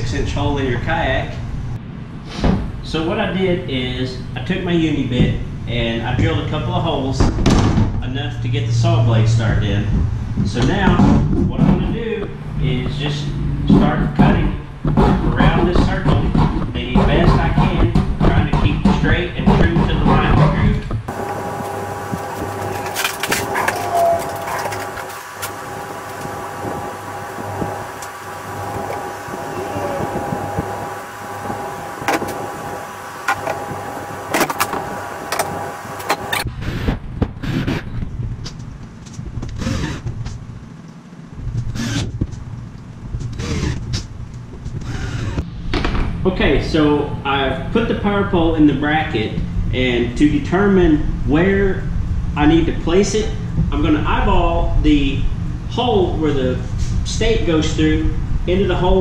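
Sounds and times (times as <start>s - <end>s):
saw cutting plastic: 21.1s - 36.5s, 39.6s - 40.0s, 41.7s - 42.1s, 43.3s - 44.0s.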